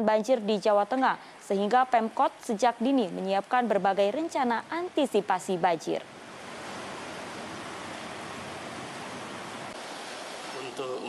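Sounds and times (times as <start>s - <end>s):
turbulent water rushing: 6.1s - 11.0s.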